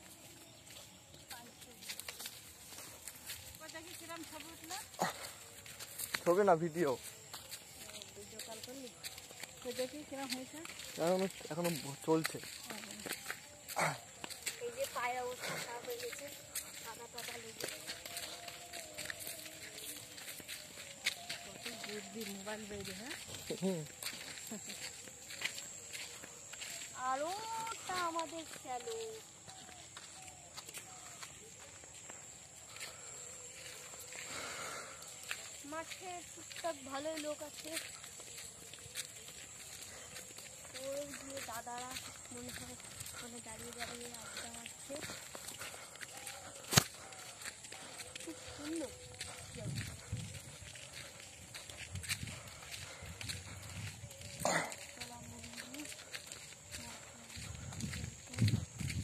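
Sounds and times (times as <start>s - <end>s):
footsteps on gravel: 0.0s - 59.0s.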